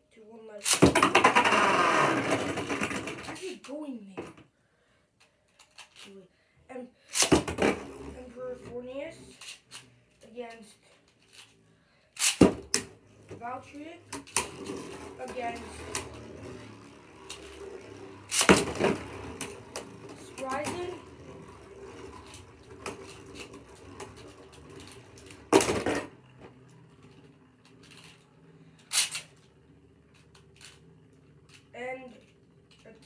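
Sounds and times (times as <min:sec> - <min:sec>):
spinning tops whirring: 0:00.6 - 0:03.5, 0:07.1 - 0:33.0
spinning tops clacking: 0:12.2 - 0:33.0.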